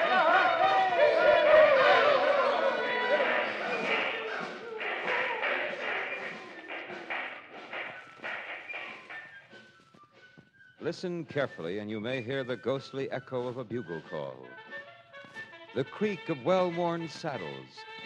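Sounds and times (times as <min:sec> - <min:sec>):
men shouting: 0:00.0 - 0:06.4
music: 0:00.0 - 0:18.0
rhythmic thumps: 0:00.0 - 0:18.0.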